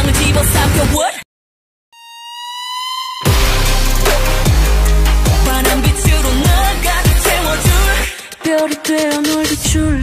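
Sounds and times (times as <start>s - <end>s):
music: 0.0s - 1.2s, 2.0s - 10.0s
high electronic tone rising: 2.0s - 8.0s.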